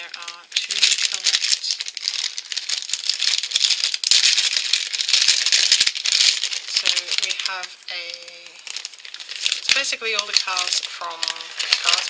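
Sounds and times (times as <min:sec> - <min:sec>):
foil packets crinkling and rattling: 0:00.0 - 0:12.0.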